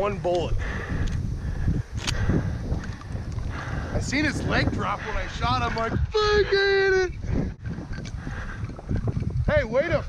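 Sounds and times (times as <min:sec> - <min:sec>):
wind buffeting microphone: 0:00.0 - 0:10.0
sharp click: 0:02.0 - 0:02.2.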